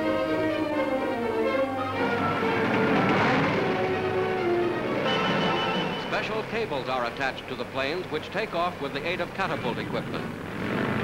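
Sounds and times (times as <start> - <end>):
orchestral music with strings: 0.0 - 7.4.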